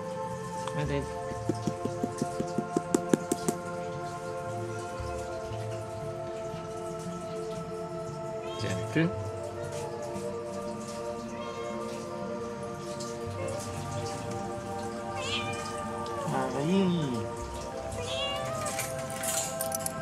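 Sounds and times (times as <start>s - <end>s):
background music with held notes: 0.0s - 20.0s
cat meowing: 8.4s - 8.8s, 11.3s - 11.9s, 15.1s - 16.5s, 18.0s - 19.0s.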